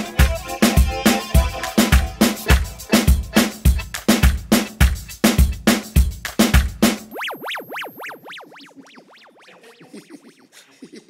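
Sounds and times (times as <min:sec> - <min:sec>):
synthesizer tone sweeping in pitch: 0:00.0 - 0:03.4, 0:07.1 - 0:10.6.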